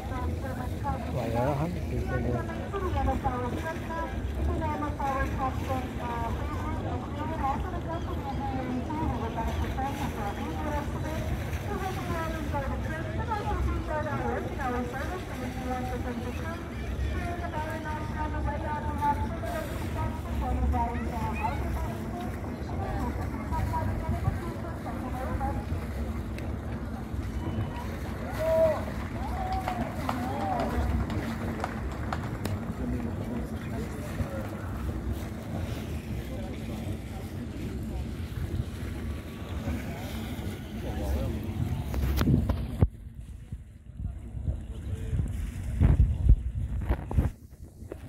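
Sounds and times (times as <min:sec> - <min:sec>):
voices talking: 0:00.0 - 0:42.2
boat engine rumble: 0:00.0 - 0:48.0.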